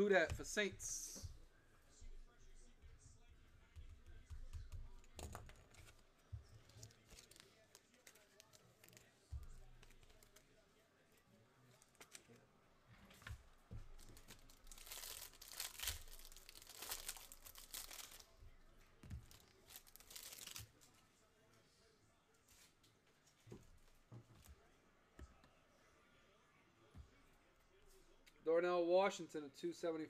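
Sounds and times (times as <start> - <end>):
plastic wrapper tearing and crumpling: 6.7 - 9.1, 13.9 - 18.3, 19.2 - 20.8.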